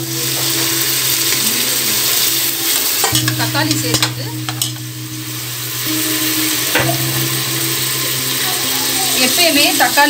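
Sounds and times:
onions and tomatoes sizzling in oil: 0:00.0 - 0:10.0
metal ladle knocking against pot: 0:03.0 - 0:04.8.

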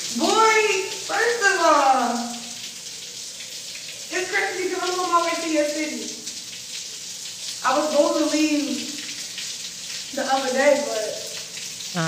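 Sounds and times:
person speaking: 0:00.1 - 0:02.4, 0:04.1 - 0:06.2, 0:07.6 - 0:08.9.

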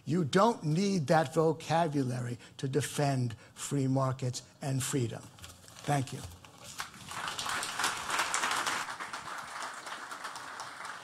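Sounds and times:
audience applauding: 0:06.8 - 0:11.0.

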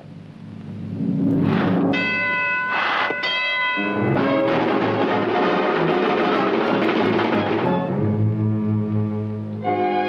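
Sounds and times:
rumble: 0:00.0 - 0:09.6
bell-like signal ringing: 0:01.9 - 0:04.5.

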